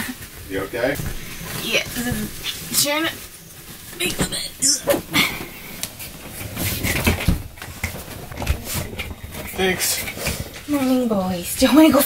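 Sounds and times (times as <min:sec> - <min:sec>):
rustling on couch cushions: 0:00.0 - 0:12.0.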